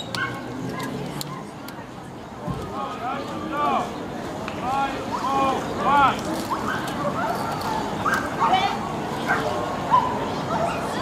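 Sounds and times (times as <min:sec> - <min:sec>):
dogs barking and yipping: 0:00.0 - 0:00.5, 0:06.4 - 0:11.0
murmur of voices: 0:00.0 - 0:11.0.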